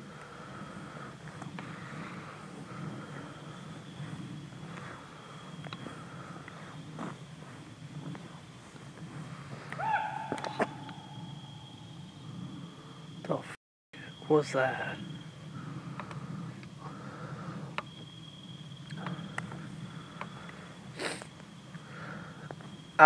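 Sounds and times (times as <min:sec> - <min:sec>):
loud pitched animal call: 0:09.7 - 0:11.8
faint steady high tone: 0:09.7 - 0:15.4.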